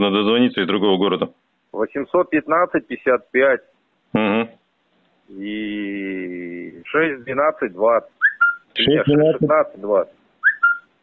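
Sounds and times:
men talking on telephone line: 0:00.0 - 0:10.2.

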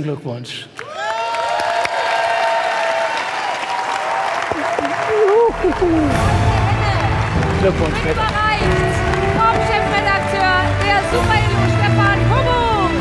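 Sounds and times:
audience applauding and cheering: 0:00.8 - 0:13.0
bass-heavy band music: 0:05.5 - 0:13.0.

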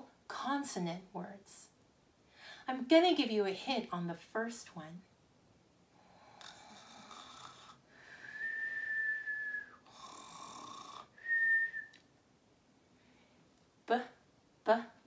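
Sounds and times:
breath sounds: 0:06.0 - 0:08.8
person whistling: 0:08.2 - 0:09.8, 0:11.2 - 0:12.0.

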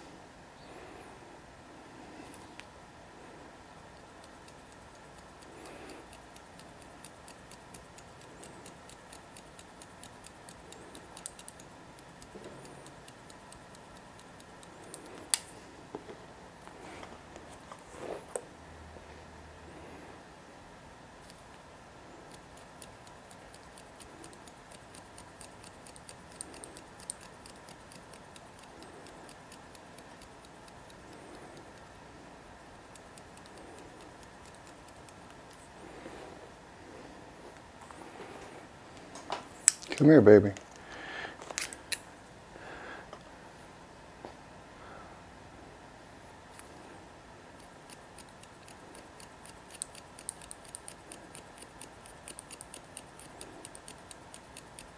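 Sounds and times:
shears snipping hair: 0:03.9 - 0:15.5, 0:22.2 - 0:32.0, 0:32.8 - 0:35.7, 0:47.6 - 0:54.9.

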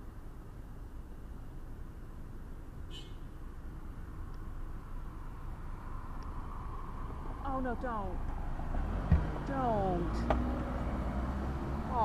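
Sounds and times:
car engine rumbling: 0:00.0 - 0:12.0.

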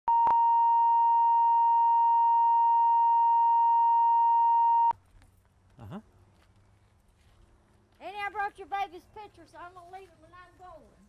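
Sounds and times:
steady reference tone: 0:00.1 - 0:04.9
faint outdoor background: 0:00.1 - 0:11.0.

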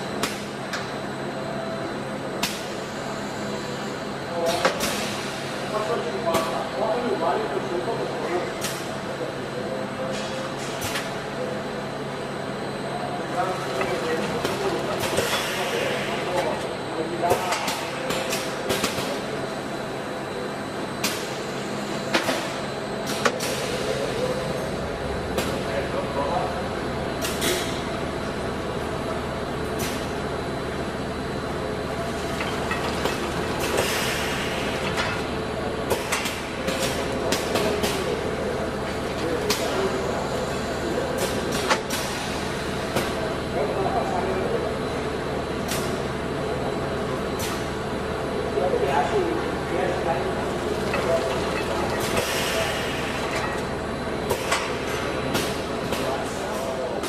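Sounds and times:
machine mechanical hum: 0:00.0 - 0:57.0.

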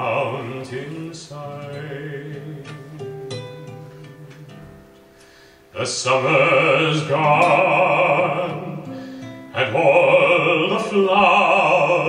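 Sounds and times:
acoustic guitar plucking: 0:00.0 - 0:12.0.

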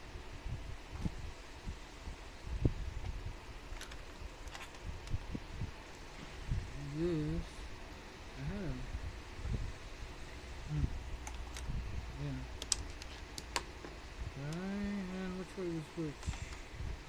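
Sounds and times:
man making wordless voice sounds: 0:06.7 - 0:07.7, 0:08.3 - 0:08.9, 0:10.7 - 0:11.0, 0:12.1 - 0:12.6, 0:14.4 - 0:16.5.

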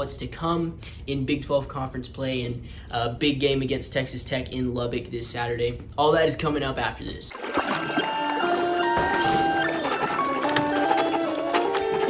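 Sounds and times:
melody of held notes: 0:08.0 - 0:12.0.

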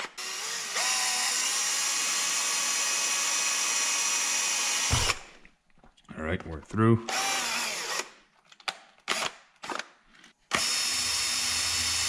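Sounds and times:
cordless drill boring through foam: 0:00.0 - 0:05.3, 0:07.1 - 0:08.1, 0:10.5 - 0:12.0.

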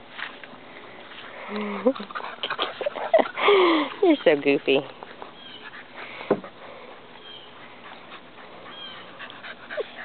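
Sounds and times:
birds chirping: 0:02.9 - 0:10.0.

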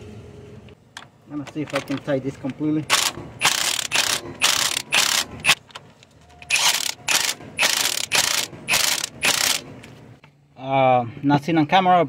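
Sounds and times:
socket ratchet clicking: 0:02.9 - 0:05.6, 0:06.5 - 0:09.6.

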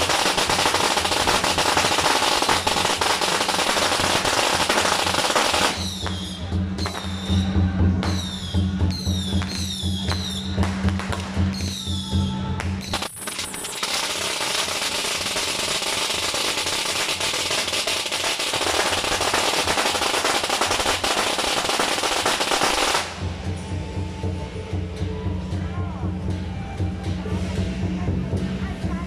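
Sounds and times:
firecrackers crackling: 0:00.0 - 0:12.0, 0:12.6 - 0:24.2.

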